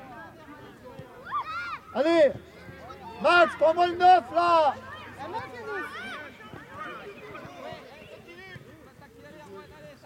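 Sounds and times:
children calling and shouting: 0.0 - 9.2.

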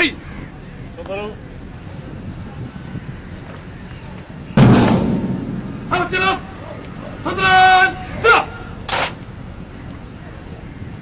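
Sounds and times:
low outdoor rumble: 4.6 - 7.4.

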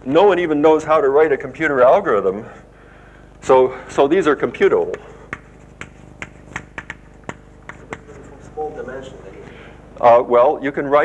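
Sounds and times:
chalk clicking on a blackboard: 4.8 - 8.6.

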